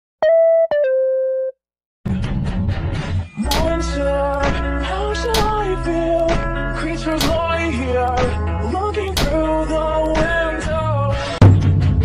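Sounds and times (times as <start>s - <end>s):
synthesized beep jingle: 0.2s - 1.6s.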